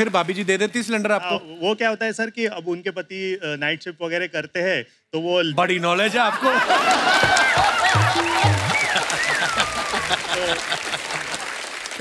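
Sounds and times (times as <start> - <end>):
audience applauding: 0.0 - 1.3, 6.4 - 12.0.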